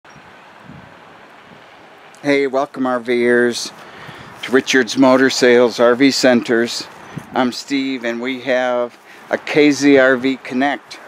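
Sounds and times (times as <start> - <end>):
wind on microphone: 0.1 - 1.9, 3.8 - 5.7, 6.5 - 7.6.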